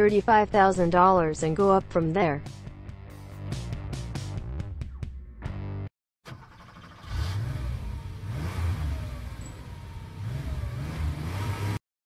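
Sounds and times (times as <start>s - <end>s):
car engine accelerating: 6.3s - 11.8s.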